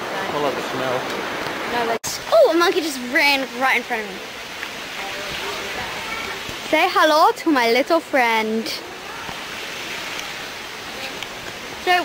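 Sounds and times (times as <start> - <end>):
flowing water rushing: 0.0 - 12.0.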